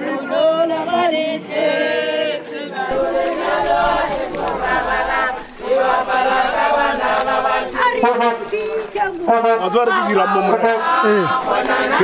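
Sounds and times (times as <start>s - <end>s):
women singing in unison: 0.0s - 12.0s.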